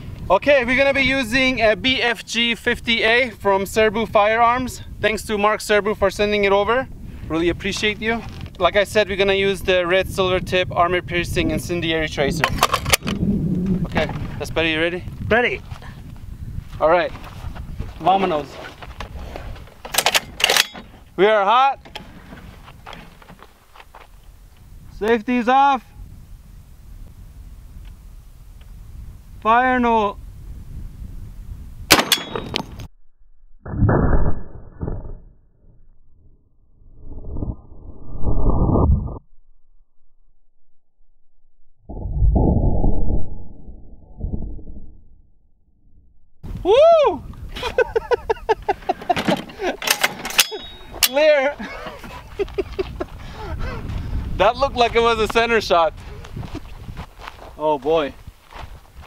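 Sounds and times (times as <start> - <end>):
low rumble: 9.7 - 16.7, 30.2 - 47.5
handling clicks and rustles: 12.4 - 13.2, 18.0 - 21.1, 48.6 - 52.9
rifle action metallic clicks: 12.4 - 13.2, 19.8 - 20.9
person laughing: 47.5 - 49.9, 51.3 - 53.9, 56.4 - 56.8.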